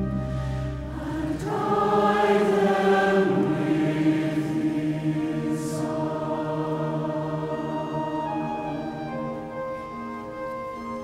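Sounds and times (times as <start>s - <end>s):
pipe organ: 0.0s - 11.0s
choir singing a slow hymn: 0.2s - 9.4s.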